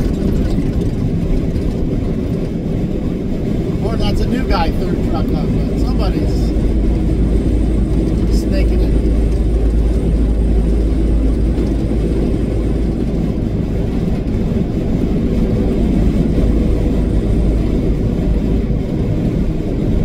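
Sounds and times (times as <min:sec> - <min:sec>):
truck diesel engine drone: 0:00.0 - 0:20.0.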